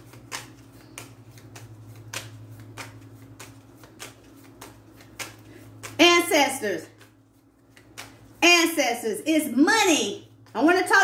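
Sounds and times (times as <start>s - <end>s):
cards riffling: 0.0s - 6.1s, 6.8s - 8.4s
low steady hum: 0.0s - 11.0s.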